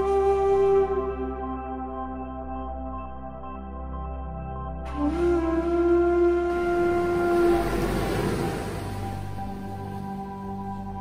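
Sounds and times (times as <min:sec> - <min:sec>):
long sliding woodwind note: 0:04.9 - 0:09.8
small waves on pebble shore: 0:07.4 - 0:10.0.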